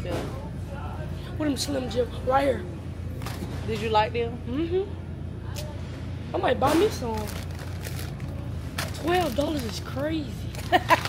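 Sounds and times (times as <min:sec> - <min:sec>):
store background hum: 0:00.0 - 0:11.0.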